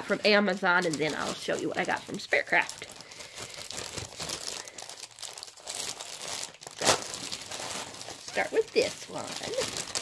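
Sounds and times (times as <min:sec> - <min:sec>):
plastic packaging crinkling: 0:00.0 - 0:10.0
loud plastic crackle: 0:00.2 - 0:10.0.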